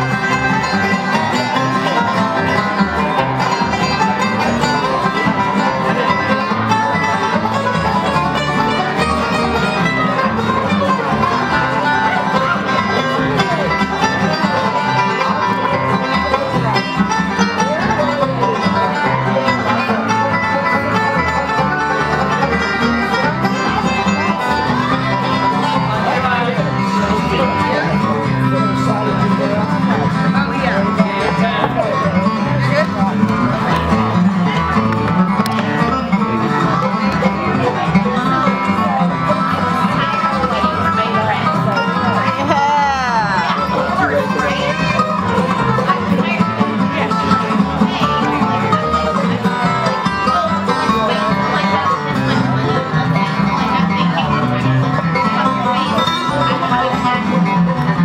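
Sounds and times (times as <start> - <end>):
acoustic guitars: 0.0 - 58.0
banjo picking fast runs: 0.0 - 58.0
upright bass: 0.0 - 58.0.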